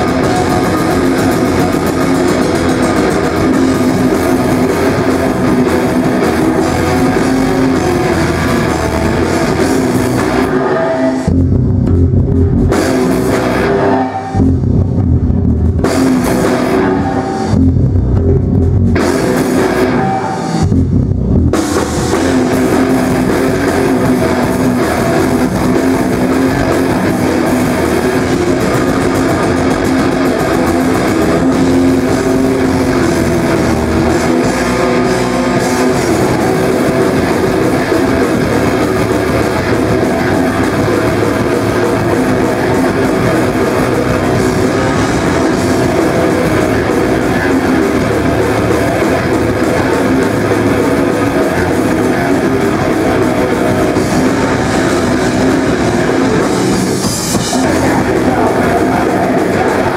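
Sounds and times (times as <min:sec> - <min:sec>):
distorted electric guitar: 0:00.0 - 0:59.9
drum kit: 0:00.0 - 0:59.9
metal band playing live: 0:00.0 - 0:59.9.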